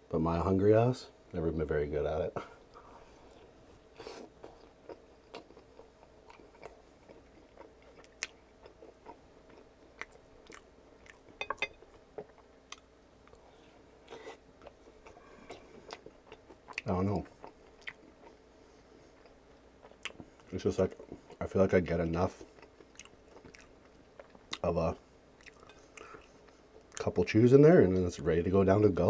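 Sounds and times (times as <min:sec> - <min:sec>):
wet chewing with mouth smacks: 0:04.2 - 0:13.4, 0:14.1 - 0:18.4, 0:22.4 - 0:24.6.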